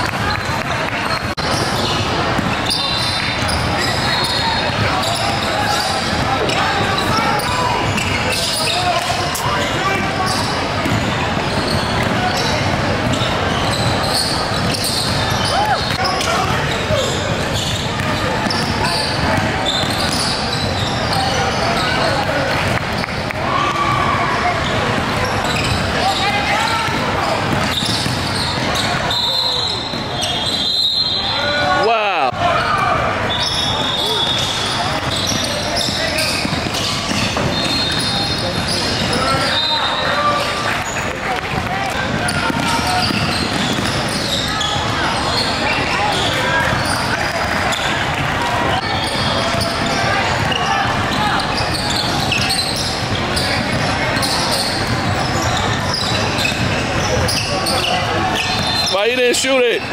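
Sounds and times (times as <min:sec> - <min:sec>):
shoe squeaks: 0:01.0 - 0:23.3, 0:24.6 - 0:31.6, 0:33.3 - 0:41.2, 0:41.8 - 0:59.9
basketball dribbling on hardwood: 0:41.6 - 0:44.1.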